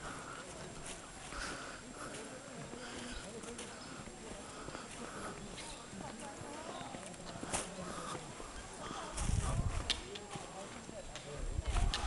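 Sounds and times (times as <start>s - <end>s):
footsteps on pavement: 0.0s - 12.0s
indistinct voices: 0.0s - 12.0s.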